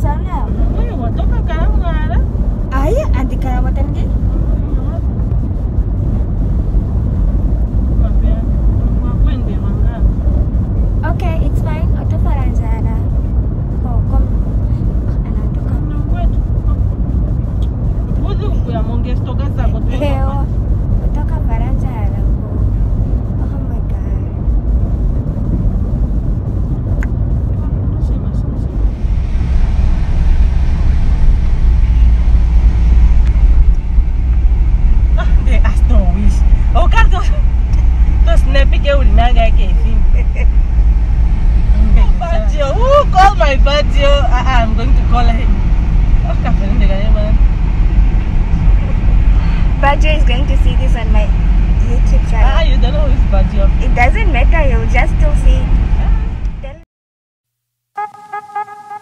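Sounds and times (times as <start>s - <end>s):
people talking: 0.0s - 5.3s, 7.9s - 10.2s, 11.0s - 13.1s, 13.8s - 20.5s, 21.2s - 22.7s, 23.4s - 24.4s, 27.4s - 28.8s, 35.2s - 37.4s, 38.2s - 40.5s, 41.7s - 45.6s, 46.2s - 47.4s, 48.6s - 56.8s
engine and tyre rumble: 0.0s - 56.8s.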